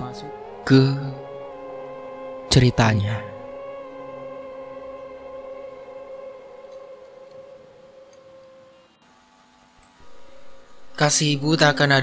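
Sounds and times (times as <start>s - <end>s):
eerie synthesizer drone: 0.0s - 12.0s.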